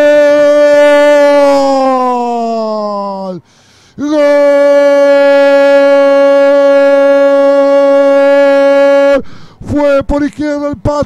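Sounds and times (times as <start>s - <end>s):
commentator shouting goal cry: 0.0s - 3.4s, 4.0s - 11.0s.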